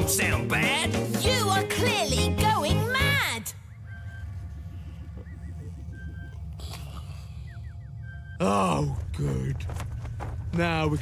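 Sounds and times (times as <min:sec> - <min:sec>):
electronic bleeps: 0:03.5 - 0:09.0
low pulsing electronic hum: 0:03.5 - 0:11.0.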